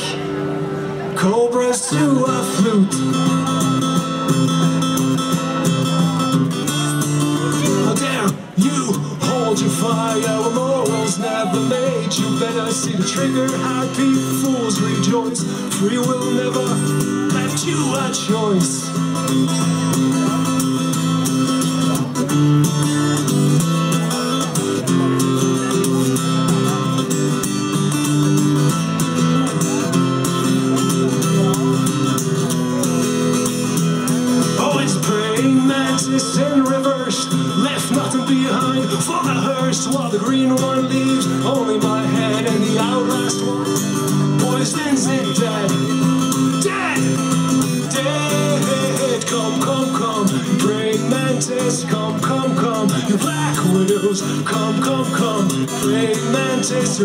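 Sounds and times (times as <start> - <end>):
acoustic guitar strumming: 0.0 - 57.0.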